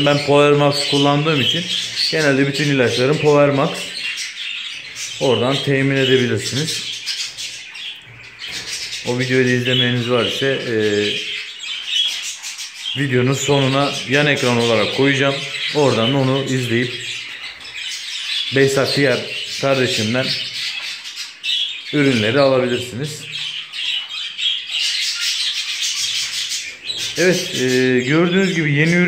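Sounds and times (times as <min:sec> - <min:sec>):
budgerigars chattering and chirping: 0:00.0 - 0:29.0.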